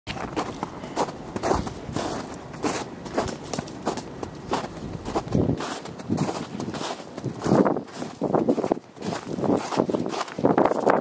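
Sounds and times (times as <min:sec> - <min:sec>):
footsteps on snow: 0:00.1 - 0:11.0.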